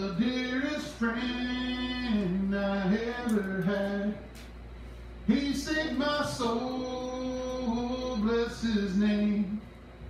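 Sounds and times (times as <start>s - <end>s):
man singing a slow hymn: 0.0s - 4.5s, 5.3s - 9.7s.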